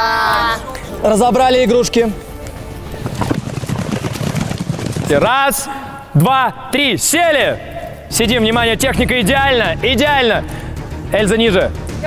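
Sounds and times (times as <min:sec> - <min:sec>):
footsteps and shuffling: 0:00.6 - 0:06.0.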